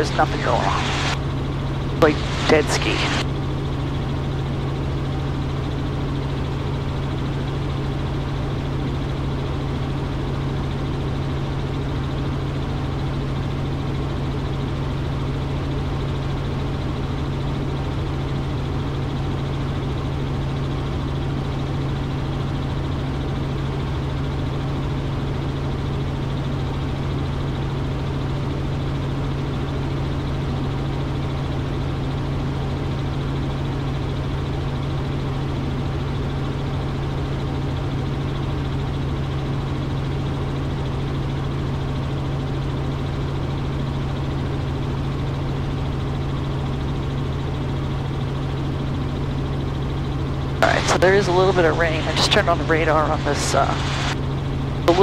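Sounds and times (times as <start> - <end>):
helicopter engine and rotor drone: 0.0 - 55.0.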